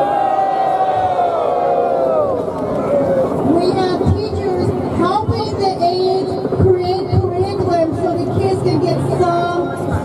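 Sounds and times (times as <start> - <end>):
crowd shouting: 0.0 - 3.4.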